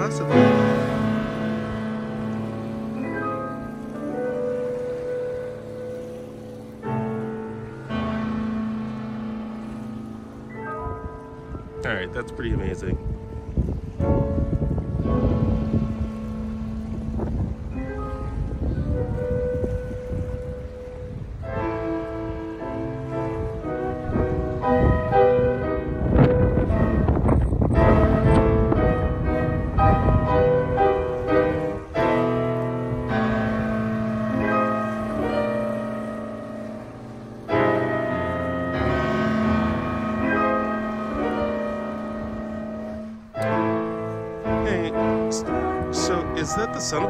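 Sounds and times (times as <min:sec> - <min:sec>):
flute clarinet and piano music: 0:00.0 - 0:47.0
low rumble of wind and water: 0:00.0 - 0:47.0.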